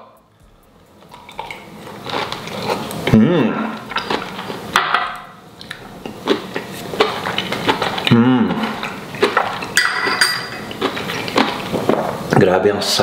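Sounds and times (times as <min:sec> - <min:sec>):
chewing crispy food: 0:00.6 - 0:09.8, 0:10.6 - 0:12.3
person humming mm: 0:03.1 - 0:03.7, 0:08.1 - 0:08.8
fork clinking glass bowl: 0:09.7 - 0:10.7.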